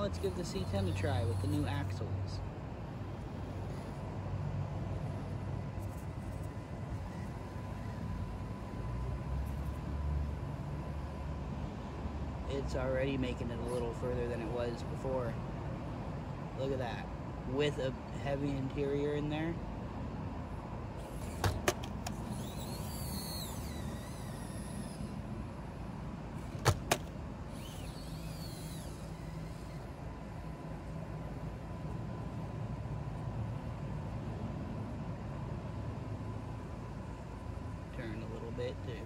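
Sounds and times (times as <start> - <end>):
small electric motor running: 0.0 - 11.2, 13.0 - 15.0, 21.0 - 32.5.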